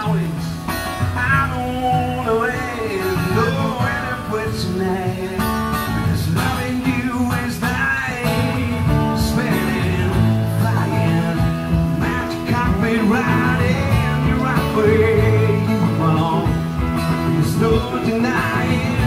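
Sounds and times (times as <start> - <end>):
acoustic guitar playing: 0.0 - 19.0
person singing: 0.0 - 19.0.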